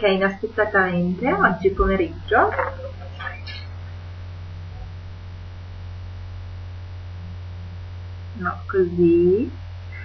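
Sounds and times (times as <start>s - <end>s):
electrical mains hum: 0.0s - 10.0s
faint hiss: 0.0s - 10.0s.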